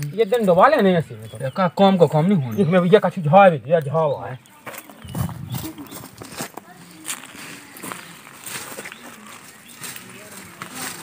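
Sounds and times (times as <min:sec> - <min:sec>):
rustles on dry leaf litter: 0:04.8 - 0:11.0.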